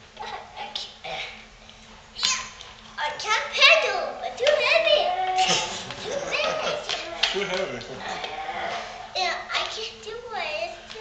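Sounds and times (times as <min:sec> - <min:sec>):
young child squealing: 0:02.2 - 0:02.6.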